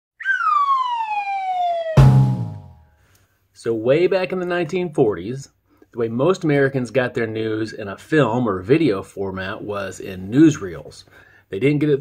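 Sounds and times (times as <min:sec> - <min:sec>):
whistling tone gliding downward: 0:00.2 - 0:02.7
deep booming hit: 0:02.0 - 0:02.8.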